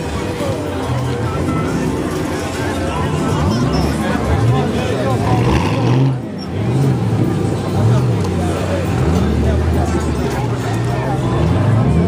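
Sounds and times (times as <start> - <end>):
car engines revving: 0.0 - 12.0
people talking: 0.0 - 12.0.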